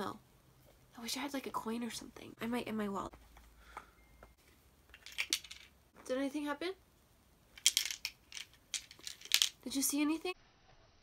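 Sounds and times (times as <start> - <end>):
coin rattling in toy bank: 7.6 - 9.6.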